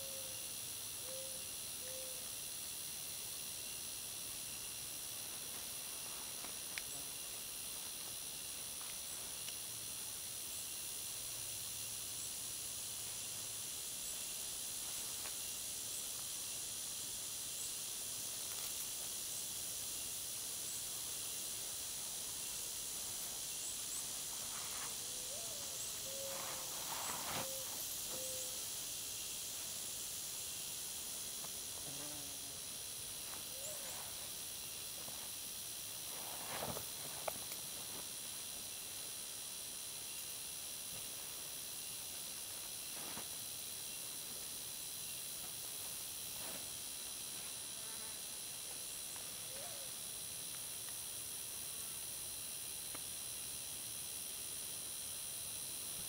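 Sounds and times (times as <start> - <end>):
high-pitched insect chorus: 0.0 - 56.0.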